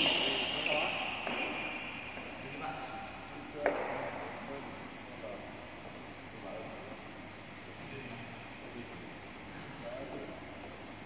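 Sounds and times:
high steady squeal: 0.0s - 2.6s.

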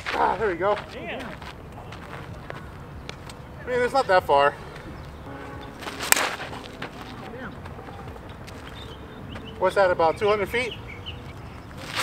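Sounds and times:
bat cracking softball: 5.8s - 7.2s.

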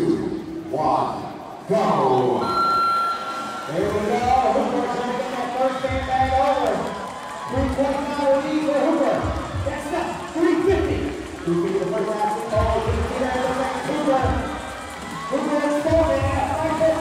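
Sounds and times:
short high tone: 2.4s - 4.4s.

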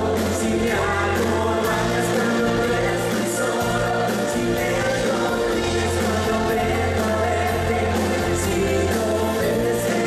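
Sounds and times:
live dance band through speakers: 0.0s - 10.0s
person singing: 0.0s - 10.0s.

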